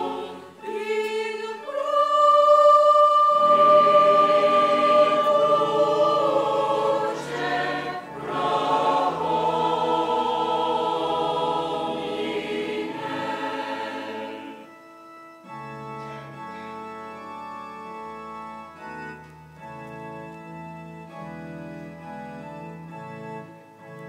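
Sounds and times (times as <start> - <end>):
choir singing: 0.0 - 14.8
organ-like keyboard chords: 0.0 - 24.0.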